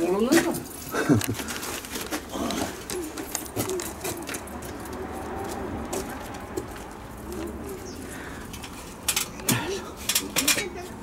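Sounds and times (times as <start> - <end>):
outdoor background noise: 0.0 - 11.0
bird cooing: 2.4 - 6.1, 7.0 - 8.5.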